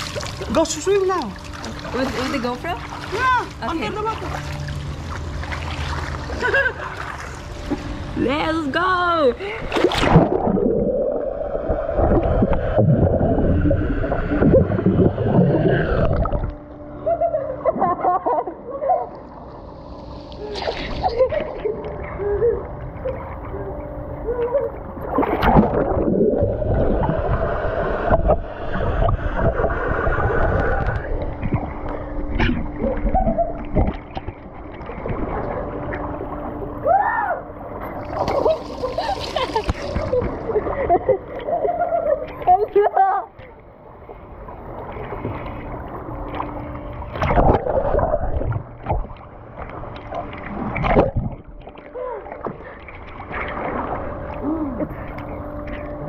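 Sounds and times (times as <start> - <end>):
water splashing and sloshing: 0.0 - 56.0.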